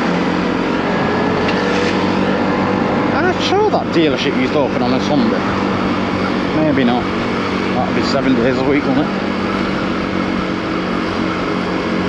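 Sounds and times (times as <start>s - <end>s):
motorcycle engine running: 0.0s - 12.0s
wind and road noise: 0.0s - 12.0s.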